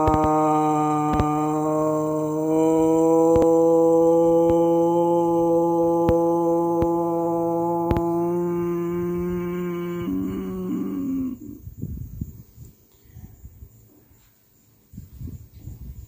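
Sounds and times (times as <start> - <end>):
man chanting a long note: 0.0 - 11.6.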